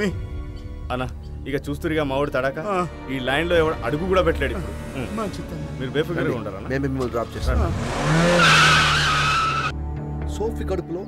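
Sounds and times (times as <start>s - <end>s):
tyres squealing in a skid: 7.8s - 9.7s.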